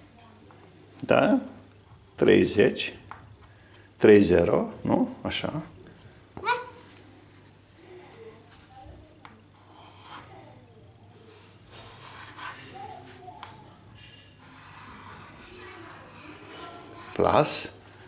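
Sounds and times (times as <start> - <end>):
soft murmured voices: 5.7 - 18.0
chalk scraping on blackboard: 11.3 - 13.2, 14.4 - 18.0.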